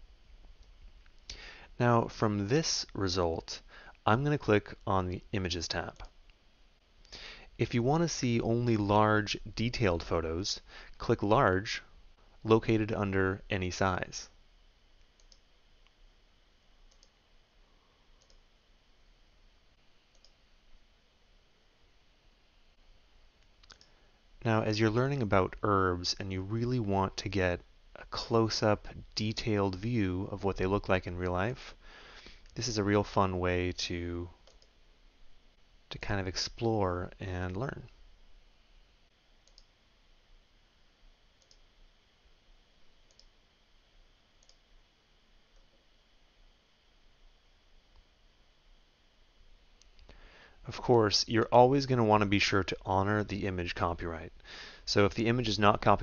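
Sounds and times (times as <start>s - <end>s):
computer mouse clicks: 15.1s - 15.4s, 16.9s - 17.2s, 18.2s - 18.4s, 20.1s - 20.4s, 23.4s - 23.9s, 34.4s - 34.7s, 39.4s - 39.7s, 41.4s - 41.6s, 43.1s - 43.3s, 44.4s - 44.6s
faint computer mouse clicks: 16.9s - 17.1s, 18.2s - 18.4s, 34.4s - 34.7s, 39.4s - 39.7s, 43.1s - 43.3s.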